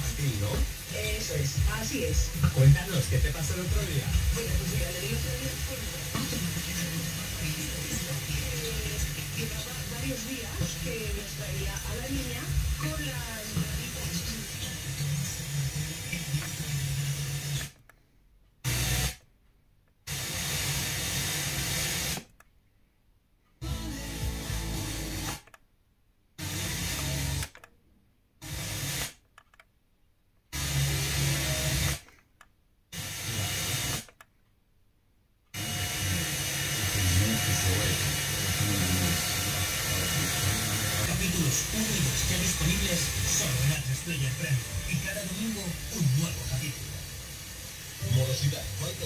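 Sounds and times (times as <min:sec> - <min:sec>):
radio static hiss: 0:00.0 - 0:17.8, 0:30.6 - 0:32.1, 0:32.9 - 0:34.1, 0:35.6 - 0:49.0
weak radio broadcast signal: 0:00.0 - 0:17.8, 0:35.6 - 0:49.0.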